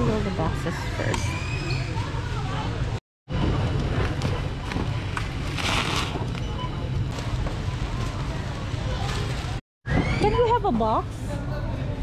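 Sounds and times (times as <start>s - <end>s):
goods rustling on conveyor belt: 4.0s - 9.6s.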